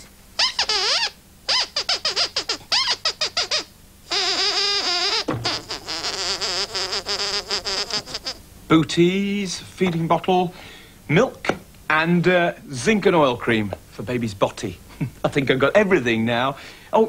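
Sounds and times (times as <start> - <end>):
puppet squeaker squeaks: 0.4 - 8.4.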